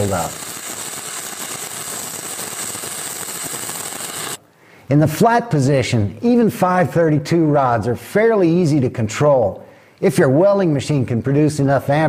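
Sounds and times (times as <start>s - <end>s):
welding arc sizzling: 0.0s - 4.4s.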